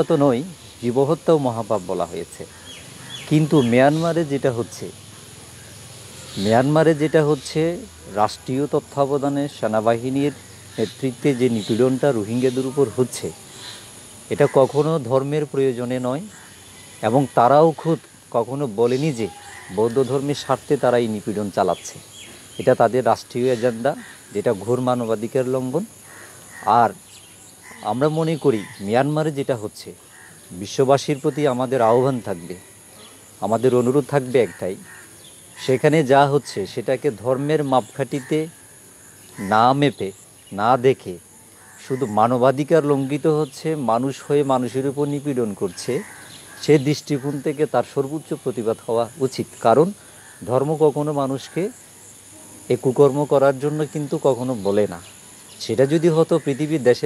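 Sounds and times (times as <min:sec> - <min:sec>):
faint high-pitched hiss: 0:00.0 - 0:57.0
man speaking: 0:06.4 - 0:13.4, 0:39.4 - 0:41.2.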